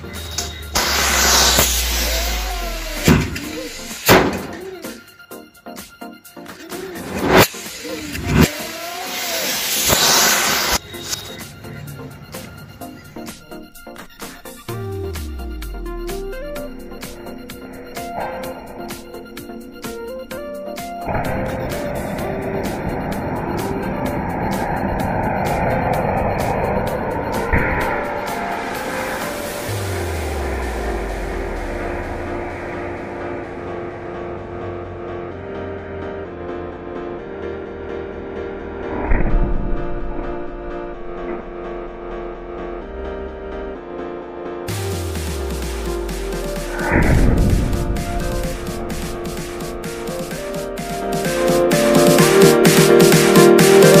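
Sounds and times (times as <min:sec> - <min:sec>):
background music with steady beat: 0:00.0 - 0:38.9, 0:39.7 - 0:54.0
rocket thrust hissing: 0:00.2 - 0:05.0, 0:06.7 - 0:11.4, 0:21.0 - 0:33.7
firework bang: 0:00.7 - 0:04.7.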